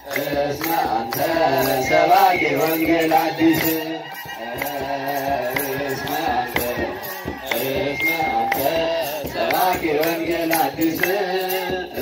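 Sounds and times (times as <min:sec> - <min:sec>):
children's choir chanting: 0:00.0 - 0:12.0
regular beat: 0:00.0 - 0:12.0.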